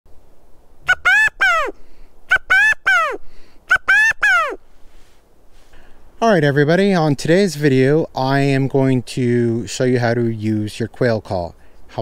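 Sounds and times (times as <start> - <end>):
quail call: 0.8 - 5.1.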